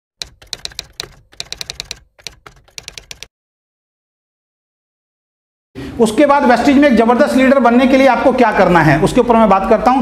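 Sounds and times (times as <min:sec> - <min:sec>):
keyboard typing clicks: 0:00.2 - 0:03.3.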